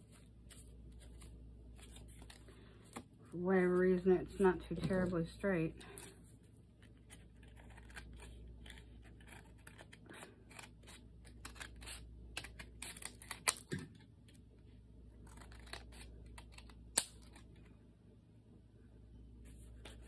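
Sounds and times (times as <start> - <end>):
scissors snipping paper: 7.1 - 13.8, 15.2 - 17.5.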